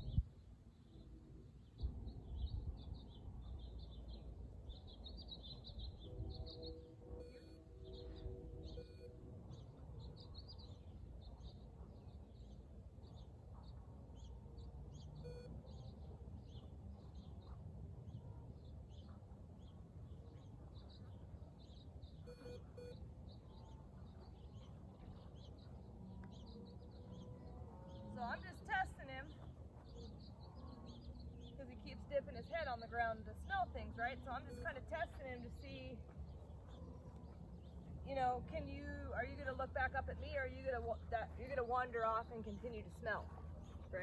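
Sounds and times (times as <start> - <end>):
faint steady hum: 0.0 - 44.0
low outdoor rumble: 0.0 - 44.0
small birds chirping: 0.0 - 44.0
short electronic beeps: 15.3 - 15.5, 22.3 - 23.0.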